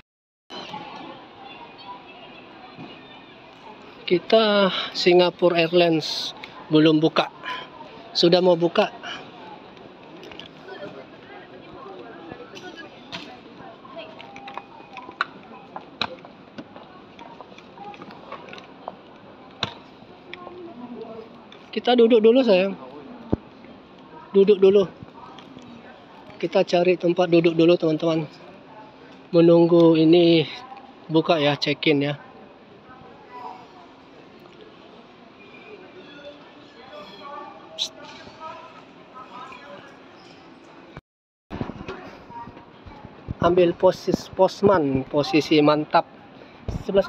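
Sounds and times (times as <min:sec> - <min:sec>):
faint voices: 0:00.5 - 0:47.0
distant voices chatter: 0:32.2 - 0:41.0.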